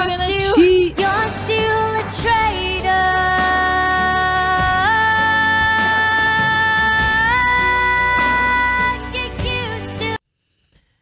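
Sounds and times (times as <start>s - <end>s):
soft backing music: 0.0s - 10.2s.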